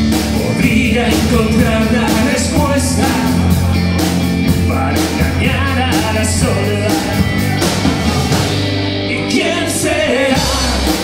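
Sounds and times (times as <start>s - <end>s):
drum kit: 0.0s - 11.0s
electric bass: 0.0s - 11.0s
electric guitar: 0.0s - 11.0s.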